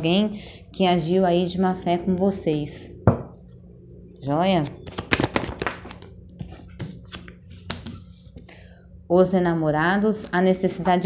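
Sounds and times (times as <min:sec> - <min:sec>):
cards tapping and flicking: 0:04.8 - 0:06.1, 0:06.7 - 0:08.0.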